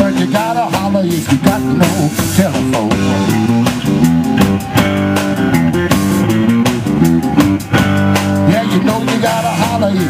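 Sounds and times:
drum strikes: 0.0 - 9.9
blues band playing: 0.0 - 10.0.

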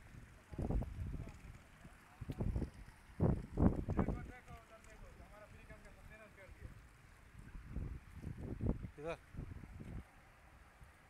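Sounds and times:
wind buffeting microphone: 0.1 - 4.4, 7.4 - 10.1.

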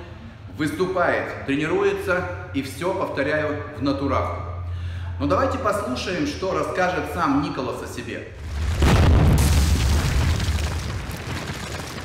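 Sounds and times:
deep rumble: 8.4 - 12.0
explosion boom: 8.4 - 12.0
rubble crashing: 8.4 - 12.0.

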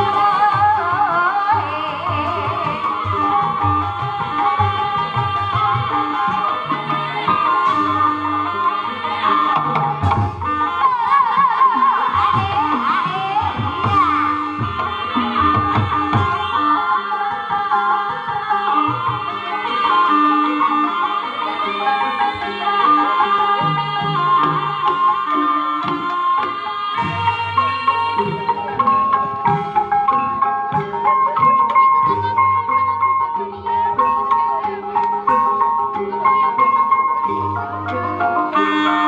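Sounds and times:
gamelan music: 0.0 - 39.0
drum strokes: 12.1 - 16.8.

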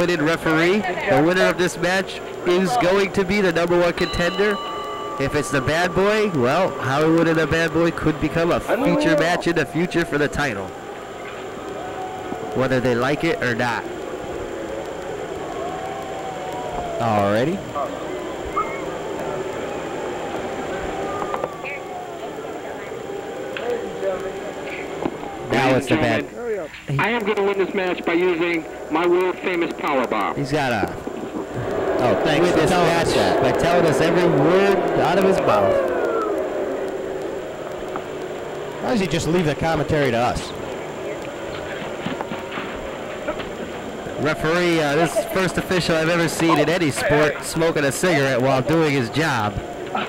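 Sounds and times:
faint held tones: 0.0 - 50.0
faint high whine: 0.0 - 50.0
low mechanical drone: 0.0 - 50.0
faint held tone: 1.6 - 14.6.

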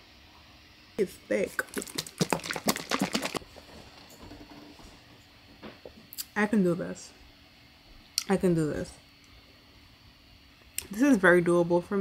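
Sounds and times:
drink sloshing in shaken bottle: 1.4 - 3.6.

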